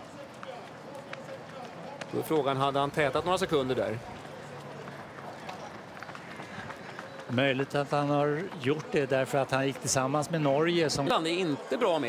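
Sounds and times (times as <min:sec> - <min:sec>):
running footsteps on stone: 0:00.0 - 0:11.1.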